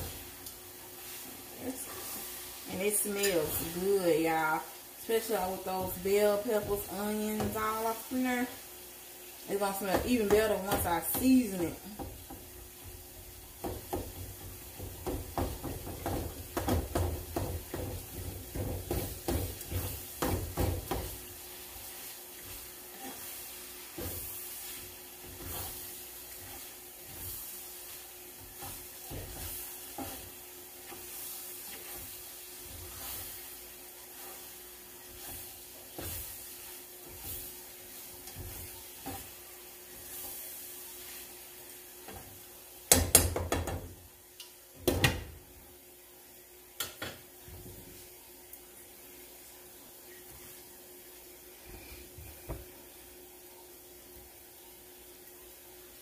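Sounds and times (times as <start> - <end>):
meat sizzling: 0.0 - 56.0
utensil scraping a pan: 17.4 - 41.4.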